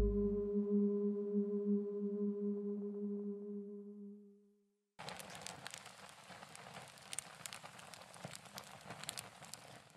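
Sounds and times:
low ringing tone: 0:00.0 - 0:04.4
fire sharp pops: 0:05.0 - 0:09.9
wood fire crackling: 0:05.0 - 0:09.9.

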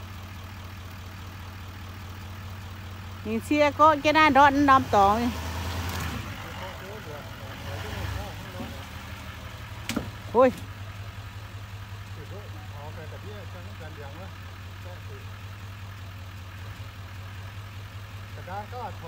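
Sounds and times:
truck engine running at low revs: 0:00.0 - 0:19.0.

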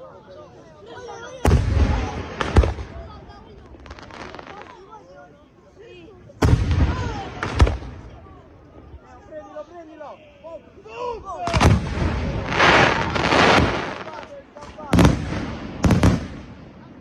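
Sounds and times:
crowd chattering: 0:00.0 - 0:17.0
firework bangs: 0:01.4 - 0:04.8, 0:06.4 - 0:08.1, 0:11.5 - 0:17.0
firework crackling: 0:01.5 - 0:04.9, 0:11.5 - 0:16.8.

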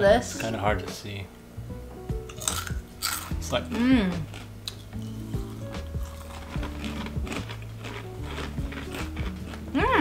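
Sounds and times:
background music with low notes: 0:00.0 - 0:10.0
crunchy snack being chewed: 0:02.3 - 0:03.4, 0:04.2 - 0:10.0.

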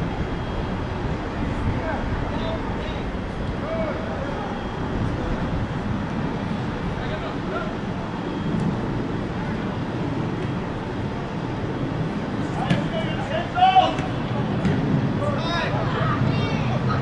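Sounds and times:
distant players shouting: 0:12.6 - 0:17.0.

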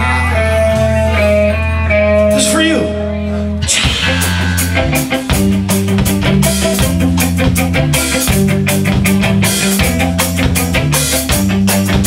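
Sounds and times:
electric guitar pitch glide: 0:00.0 - 0:12.0
live rock band playing: 0:00.0 - 0:12.0.

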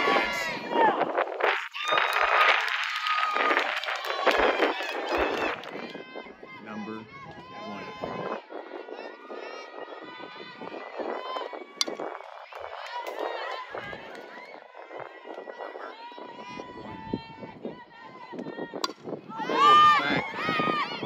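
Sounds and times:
voices calling out and chattering: 0:00.0 - 0:21.0.

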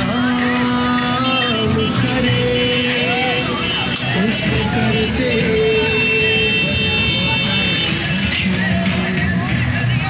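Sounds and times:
street crowd noise: 0:00.0 - 0:10.0
vehicle horn held steadily: 0:01.2 - 0:08.0.

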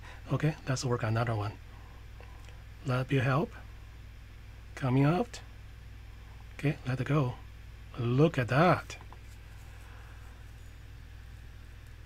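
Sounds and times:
small pump humming: 0:01.6 - 0:12.0.

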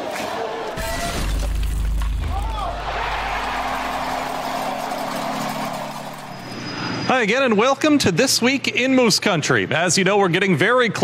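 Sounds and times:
rushing swell sound effect: 0:02.6 - 0:07.7
thin high tone: 0:03.4 - 0:07.7.

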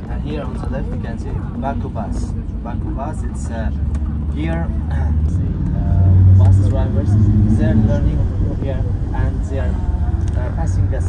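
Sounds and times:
muffled voices talking: 0:00.0 - 0:11.0
vehicle engine and tyres rumble: 0:00.0 - 0:11.0.

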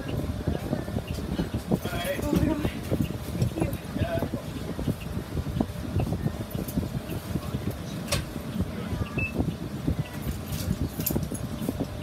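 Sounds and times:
bus engine idling: 0:00.0 - 0:12.0
rattles and clicks of bus fittings: 0:01.0 - 0:12.0.

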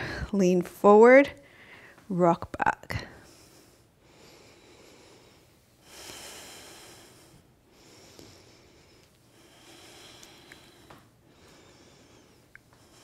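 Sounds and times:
woman breathing through nose: 0:01.4 - 0:02.0, 0:03.1 - 0:13.0.

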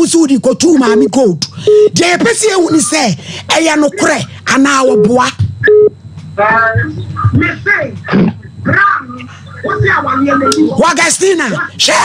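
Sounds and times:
woman talking animatedly: 0:00.0 - 0:05.4, 0:09.1 - 0:12.0.

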